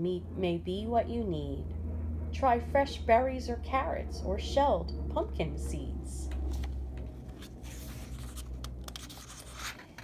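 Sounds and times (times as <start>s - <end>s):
low steady hum: 0.0s - 10.0s
book page turning: 6.3s - 10.0s.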